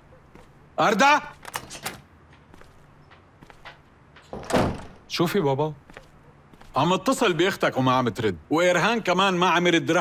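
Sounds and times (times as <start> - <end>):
door shutting thud: 4.3 - 5.0.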